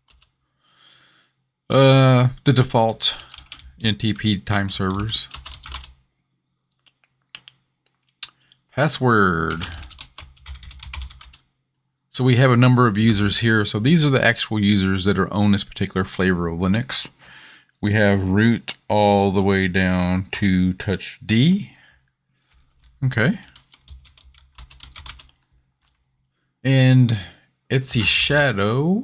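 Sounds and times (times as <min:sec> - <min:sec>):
computer keyboard typing: 0:00.0 - 0:00.3, 0:03.1 - 0:06.0, 0:09.5 - 0:11.5, 0:22.5 - 0:26.0.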